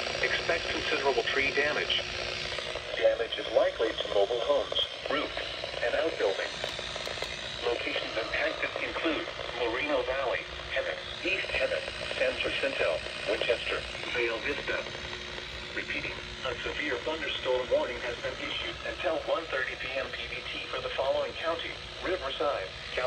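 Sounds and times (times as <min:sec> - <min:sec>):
automated voice from radio speakers: 0:00.2 - 0:02.0, 0:02.6 - 0:06.7, 0:07.6 - 0:23.0.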